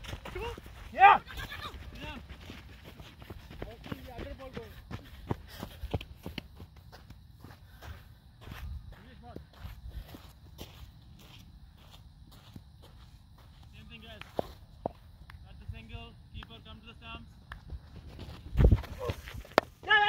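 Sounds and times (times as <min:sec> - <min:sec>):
wind rumbling on microphone: 0:17.6 - 0:19.6.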